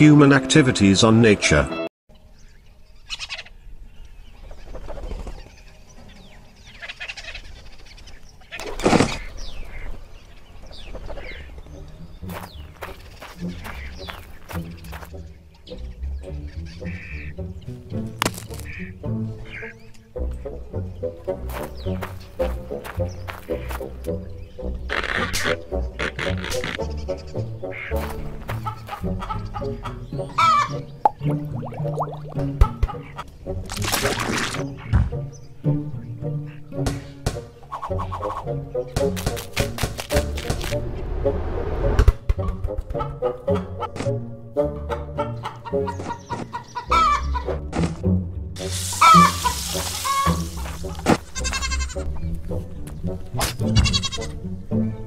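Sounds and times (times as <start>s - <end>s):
orchestral background music: 0.0s - 2.6s, 4.8s - 55.0s
birds calling: 2.1s - 40.8s, 42.3s - 55.0s
chicken clucking: 27.7s - 30.7s, 44.8s - 47.5s
cartoon chicken squawk: 45.2s - 47.5s, 49.0s - 50.4s.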